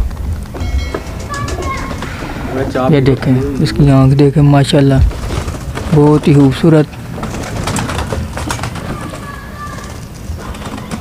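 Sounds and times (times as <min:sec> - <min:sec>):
pigeons cooing: 0:01.2 - 0:11.0
clicks and rustles: 0:04.9 - 0:11.0.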